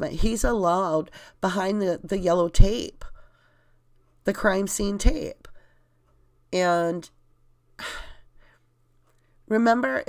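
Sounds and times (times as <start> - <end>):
woman sighing: 7.8 - 8.3.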